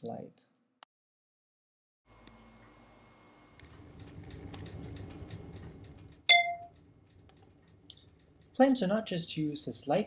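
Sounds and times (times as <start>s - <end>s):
sharp ringing clink: 6.3s - 6.7s.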